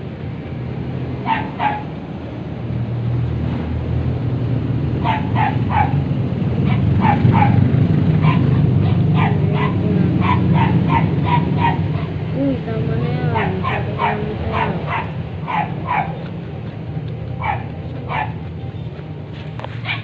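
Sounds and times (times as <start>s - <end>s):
dog barking: 1.2s - 1.9s, 5.0s - 12.2s, 13.3s - 16.3s, 17.4s - 18.4s, 19.8s - 20.0s.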